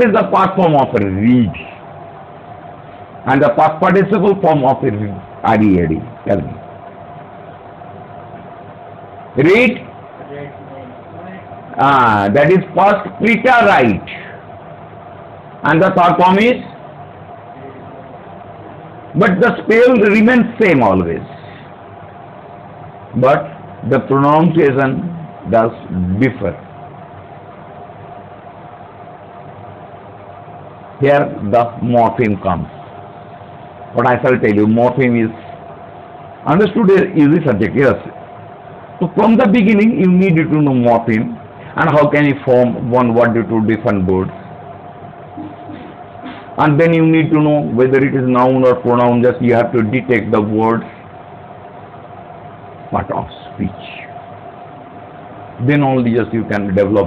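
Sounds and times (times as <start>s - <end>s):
man speaking: 0.0s - 1.8s, 3.2s - 6.7s, 9.4s - 14.4s, 15.6s - 16.8s, 19.1s - 21.7s, 23.1s - 26.7s, 31.0s - 32.8s, 33.9s - 35.6s, 36.4s - 38.2s, 39.0s - 44.5s, 46.6s - 51.0s, 52.9s - 54.2s, 55.6s - 57.0s
background hum and hiss: 0.0s - 57.0s.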